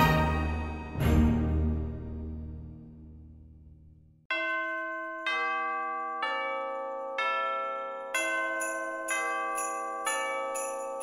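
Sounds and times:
soundtrack music: 0.0 - 3.5.

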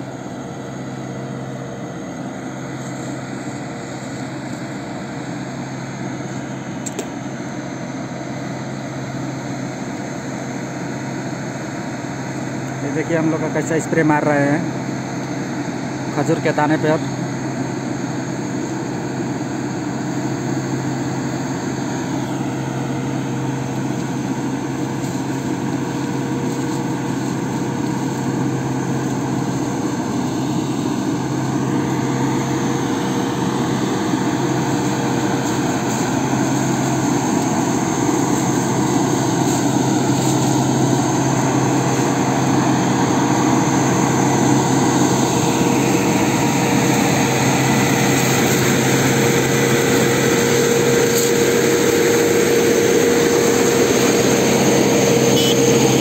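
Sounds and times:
tractor engine hum: 0.0 - 56.0.

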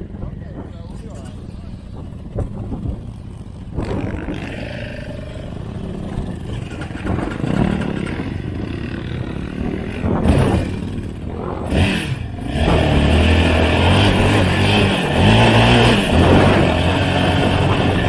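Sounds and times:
quad engines revving: 0.0 - 18.0.

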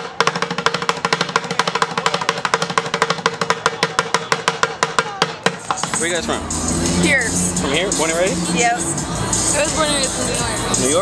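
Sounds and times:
drumming on plastic buckets: 0.0 - 6.8.

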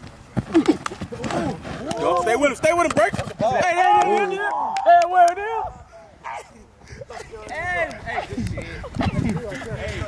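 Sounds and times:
quick footfalls: 0.0 - 4.2
men shouting and grunting: 0.4 - 10.0.

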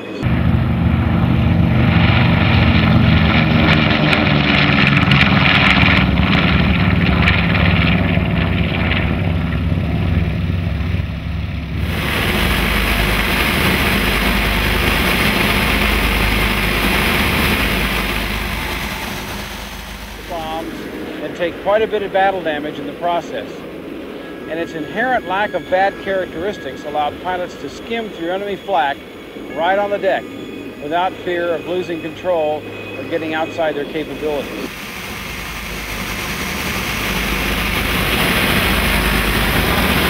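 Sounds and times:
engine and wind drone: 0.0 - 40.0
propeller plane engines roaring past: 0.0 - 40.0.

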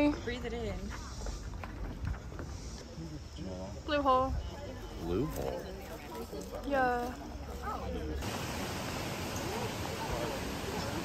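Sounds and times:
steady rushing hiss: 2.2 - 4.0, 8.2 - 11.0
faint distant voices: 2.5 - 11.0.

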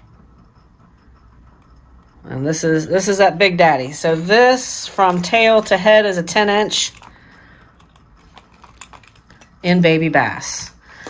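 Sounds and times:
handling noise: 3.9 - 9.8.

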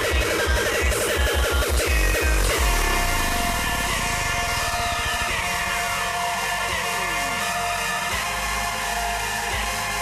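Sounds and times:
electronic dance music breakdown: 0.0 - 10.0
falling synth sweep: 2.2 - 7.5.

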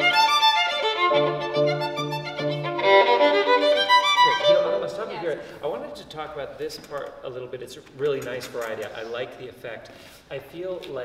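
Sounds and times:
piano accompaniment: 0.0 - 5.1
violin playing sustained notes: 0.0 - 5.6.

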